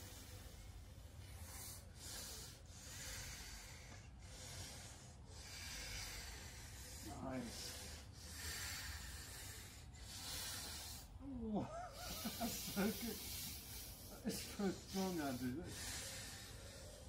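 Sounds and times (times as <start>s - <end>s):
heavy hissing breaths: 0.0s - 17.0s.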